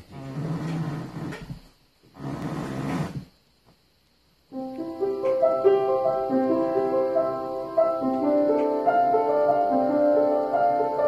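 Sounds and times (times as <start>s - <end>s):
wooden bench creaking and scraping: 0.0s - 3.4s.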